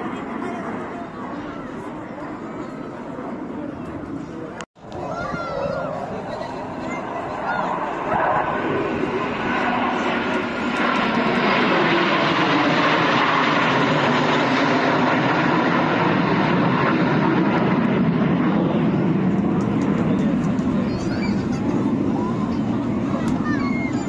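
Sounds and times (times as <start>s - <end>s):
crowd voices: 0.0s - 24.0s
jet engines roaring overhead: 0.0s - 24.0s.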